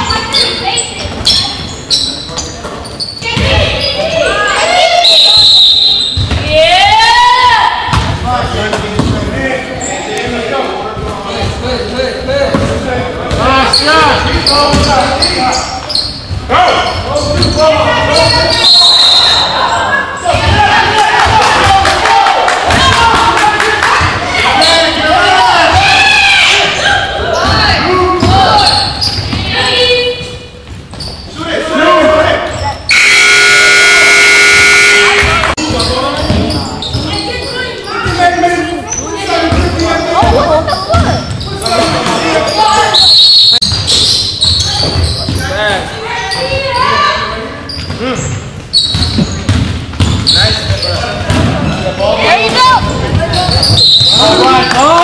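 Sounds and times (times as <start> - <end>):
scoreboard buzzer: 32.9 - 35.4.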